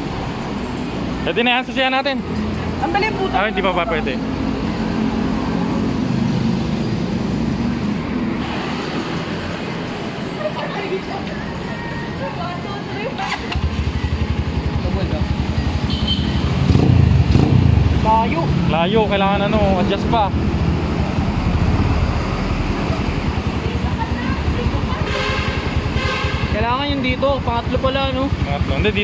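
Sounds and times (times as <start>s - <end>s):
motorcycle engine running: 13.3s - 18.5s, 22.8s - 29.0s.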